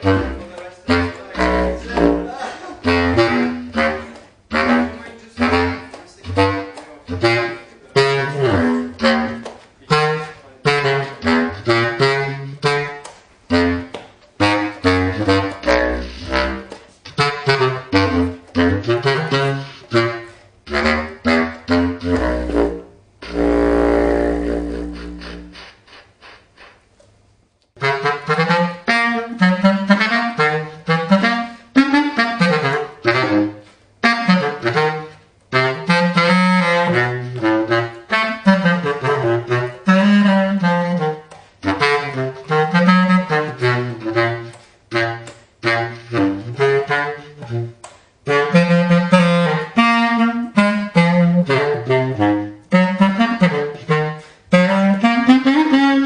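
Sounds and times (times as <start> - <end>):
bass clarinet solo: 0.0 - 26.8, 27.8 - 56.0.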